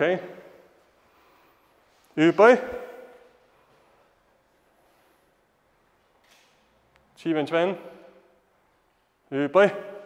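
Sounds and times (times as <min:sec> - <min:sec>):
echo of called command: 0:02.1 - 0:03.4, 0:07.2 - 0:08.4, 0:09.2 - 0:10.0.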